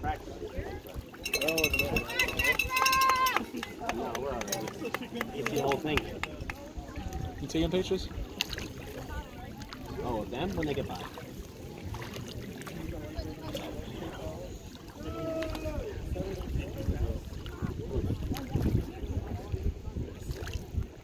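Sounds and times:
people talking: 0.0 - 11.8, 12.6 - 20.9
wind rumbling on microphone: 5.9 - 11.2, 12.8 - 21.0.

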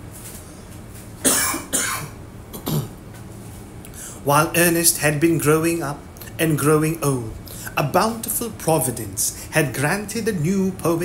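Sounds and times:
man coughing: 1.2 - 3.0.

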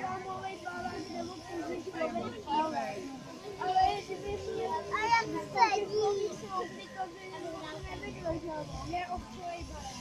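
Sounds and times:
children's voices chattering: 0.0 - 10.0.

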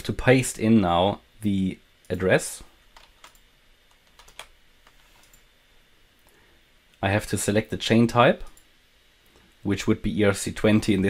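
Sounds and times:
computer keyboard keystrokes: 3.0 - 5.4.

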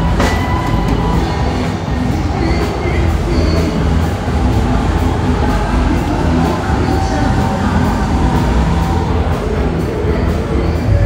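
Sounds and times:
crowd voices: 0.0 - 11.0
music with deep bass: 0.0 - 11.0.

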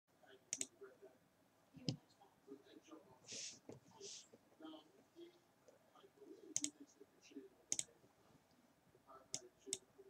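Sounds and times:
faint low murmur: 0.1 - 10.0
faint sharp clicks: 0.5 - 0.8, 6.6 - 6.8.

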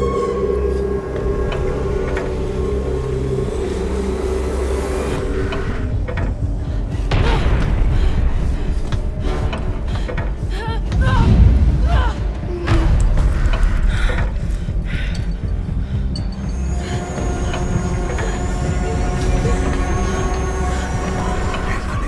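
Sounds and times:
droning horror score: 0.0 - 22.0
low rumble: 0.0 - 22.0.

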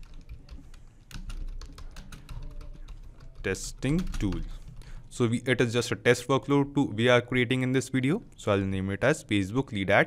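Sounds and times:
computer keyboard typing: 0.0 - 5.1.

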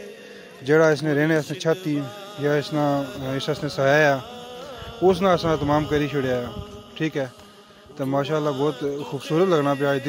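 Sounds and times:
voice with gliding pitch: 1.3 - 7.4.

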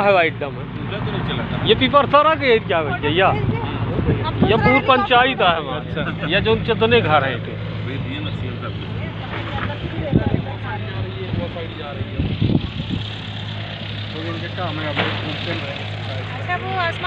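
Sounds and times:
low engine hum: 0.0 - 17.0
people talking nearby: 0.0 - 17.0.

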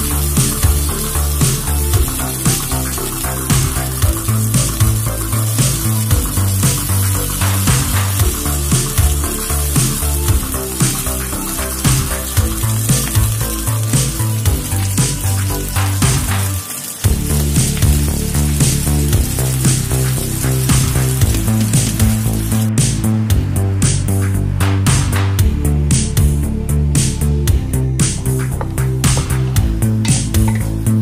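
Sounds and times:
fish sizzling in oil: 0.0 - 22.8
background music with beat: 0.0 - 31.0.

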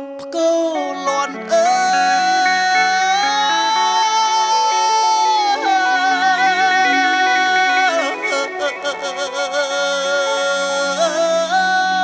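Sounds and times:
man singing long high note: 0.0 - 12.0
sustained backing accompaniment: 0.0 - 12.0.

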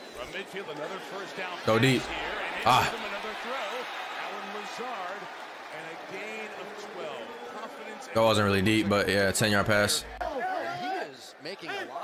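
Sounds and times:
crowd noise: 0.0 - 12.0
male commentator talking: 0.2 - 12.0.

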